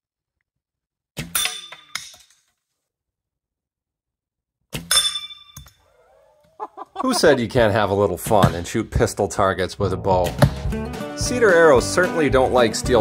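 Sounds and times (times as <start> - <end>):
arrows hitting steel targets: 1.2 - 2.2.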